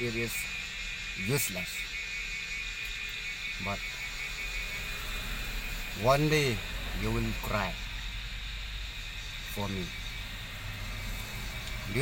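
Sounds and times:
vehicle cabin hum and hiss: 0:00.0 - 0:12.0.

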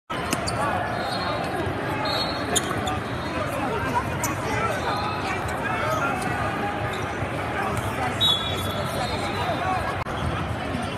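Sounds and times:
voices of players and spectators: 0:00.1 - 0:10.9.

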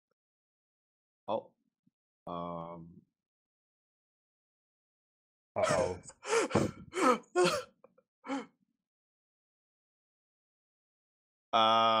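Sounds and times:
person making wordless exclamations: 0:05.6 - 0:06.7.

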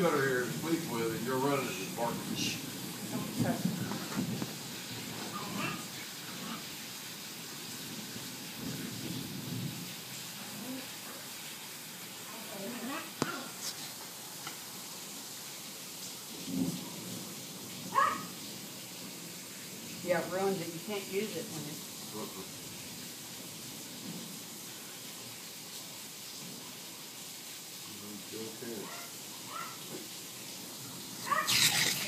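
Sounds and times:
rain hissing: 0:00.0 - 0:32.0.

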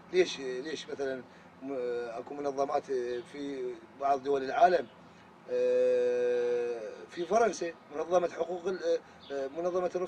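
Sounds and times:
man speaking: 0:00.0 - 0:04.9, 0:05.5 - 0:10.0
man's drawn-out hesitation sound: 0:00.0 - 0:10.0.

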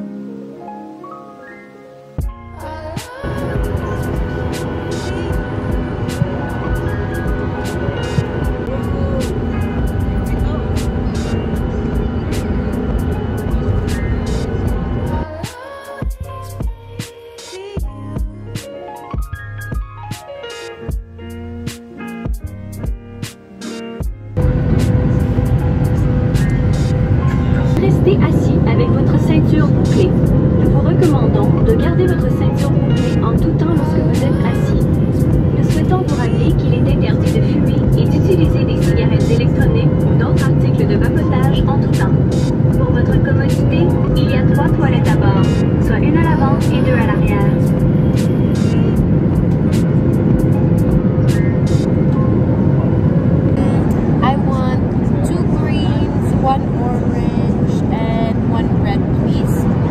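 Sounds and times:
airliner cabin drone: 0:02.2 - 0:59.9
indistinct voices: 0:02.7 - 0:16.4, 0:24.4 - 0:52.2.

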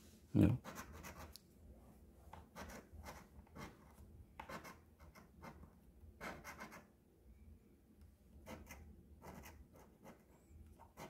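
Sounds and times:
coin scratching lottery ticket: 0:00.6 - 0:01.3, 0:04.4 - 0:05.6, 0:06.2 - 0:06.9, 0:08.4 - 0:10.3.

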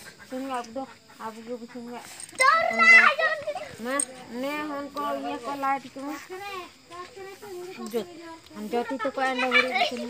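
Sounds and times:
people talking: 0:00.0 - 0:10.0
child calling out loudly: 0:02.4 - 0:03.8.

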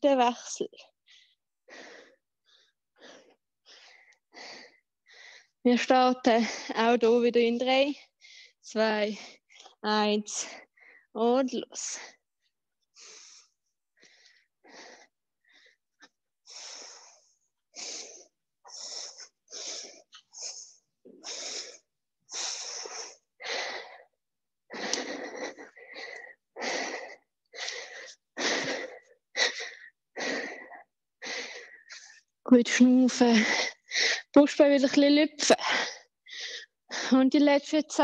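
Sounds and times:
woman breathing hard: 0:01.0 - 0:05.6, 0:12.9 - 0:32.3, 0:35.6 - 0:37.2.

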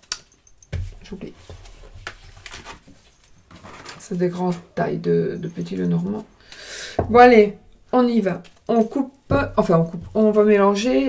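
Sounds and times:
cards rustling: 0:01.5 - 0:03.4.

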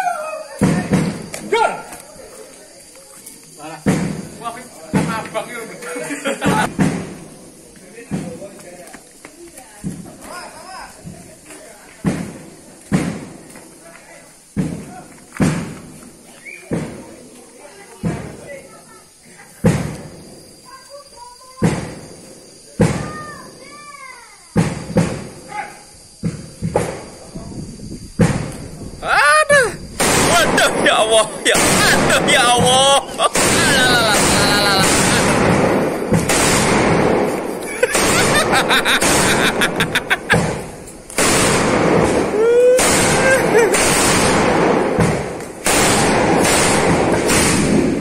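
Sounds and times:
firecrackers banging: 0:00.5 - 0:02.7, 0:03.5 - 0:18.8, 0:19.5 - 0:23.9, 0:24.5 - 0:25.5, 0:26.1 - 0:27.3, 0:28.1 - 0:48.0
rapid firecracker crackle: 0:00.5 - 0:23.8, 0:24.5 - 0:27.3, 0:29.5 - 0:48.0.

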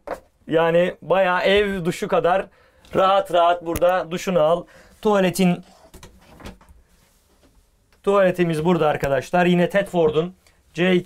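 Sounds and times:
faint rustling: 0:04.7 - 0:11.0.

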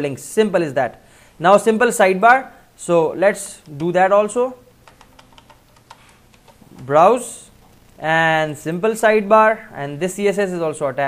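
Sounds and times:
keyboard keys tapping: 0:04.8 - 0:07.0.

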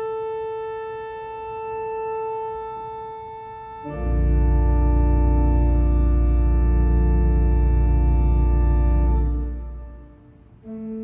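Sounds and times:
pipe organ sustained note: 0:00.0 - 0:11.0.

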